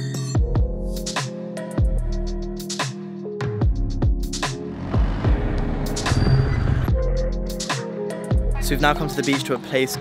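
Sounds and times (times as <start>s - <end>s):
electronic music with drum hits: 0.2s - 9.4s.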